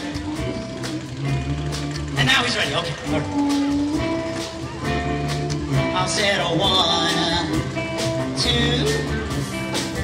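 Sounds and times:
drums: 0:00.0 - 0:10.0
electric guitar: 0:00.0 - 0:10.0.

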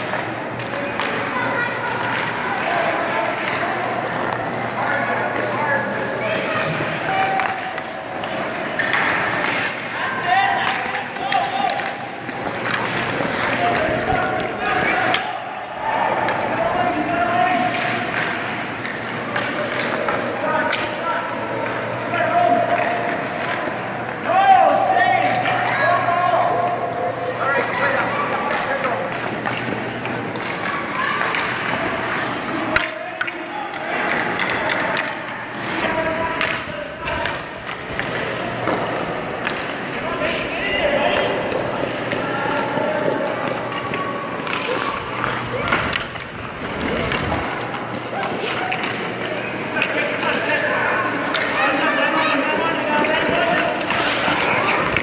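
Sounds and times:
skate blades scraping ice: 0:00.0 - 0:20.9, 0:21.6 - 0:55.0
children's voices and calls: 0:01.2 - 0:04.1, 0:30.4 - 0:32.2.

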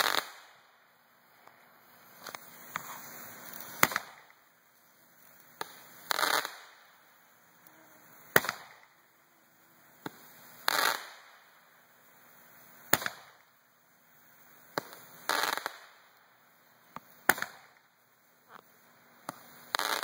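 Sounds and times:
roman candles firing: 0:00.0 - 0:11.4.

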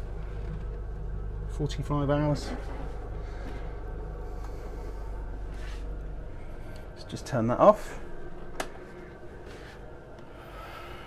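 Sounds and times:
diesel generator humming: 0:00.0 - 0:11.0.

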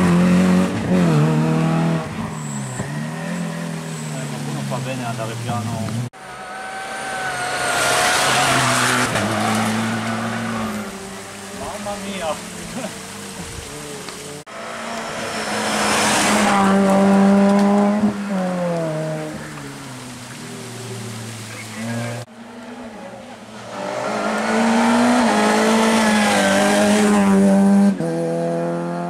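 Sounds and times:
rally car engines revving: 0:00.0 - 0:29.0.

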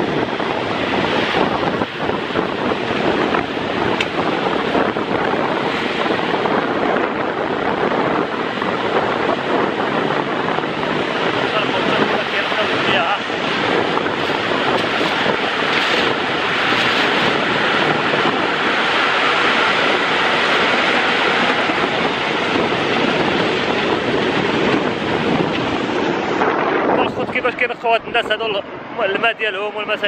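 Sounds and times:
boat engine running: 0:00.0 - 0:30.0
conveyor tipping waterweed: 0:11.4 - 0:21.6.

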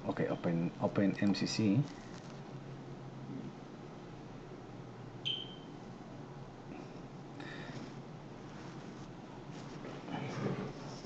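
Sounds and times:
faint room noise: 0:00.0 - 0:11.0
short high-pitched beep: 0:05.2 - 0:05.7.

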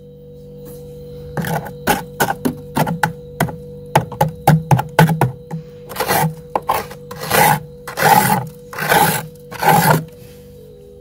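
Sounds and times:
knife scraping frost: 0:01.4 - 0:04.3, 0:05.0 - 0:10.2.

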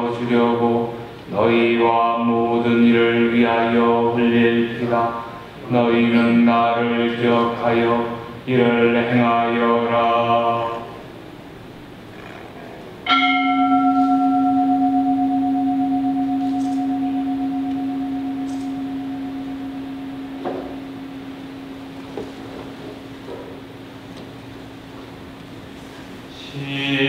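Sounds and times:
bell ringing: 0:13.1 - 0:22.1.

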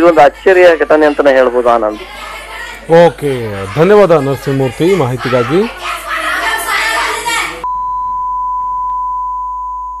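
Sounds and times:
steady electronic beep tone: 0:07.6 - 0:10.0.

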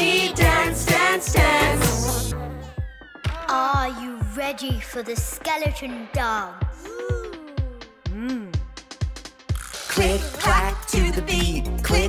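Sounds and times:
children's song music: 0:00.0 - 0:12.0.

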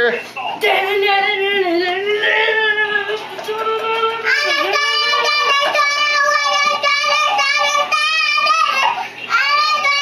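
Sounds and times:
girl singing into toy microphone: 0:00.8 - 0:10.0.

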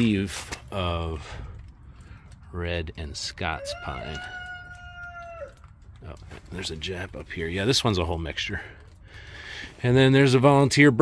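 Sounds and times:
rooster crowing: 0:03.5 - 0:05.7.

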